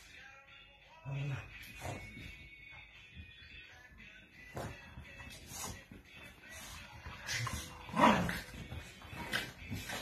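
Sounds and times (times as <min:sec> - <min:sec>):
dogs scuffling on bedding: 0:04.4 - 0:10.0.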